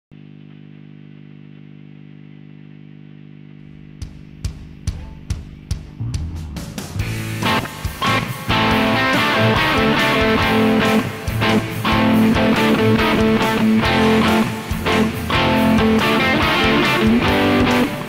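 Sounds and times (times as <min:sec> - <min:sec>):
amplifier hum: 0:00.1 - 0:18.0
electric guitar notes and chords: 0:03.7 - 0:18.0.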